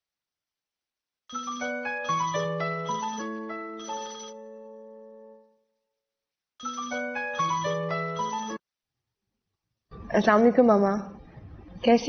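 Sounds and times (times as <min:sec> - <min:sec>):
phone ringtone bell-like melody: 0:01.3 - 0:05.7, 0:06.6 - 0:08.6.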